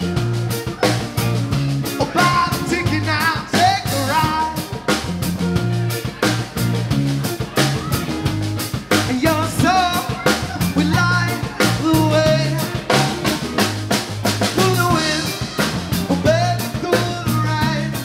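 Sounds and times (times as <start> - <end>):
drum kit beat: 0.0 - 18.0
electric bass: 0.0 - 18.0
electric guitar: 0.0 - 18.0.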